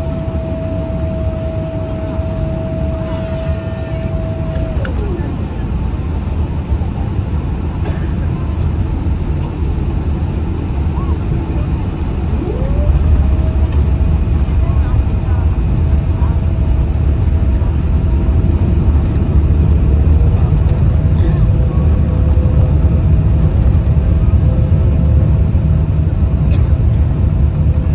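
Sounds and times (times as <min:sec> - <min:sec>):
jet engines rumbling and whining: 0:00.0 - 0:27.9.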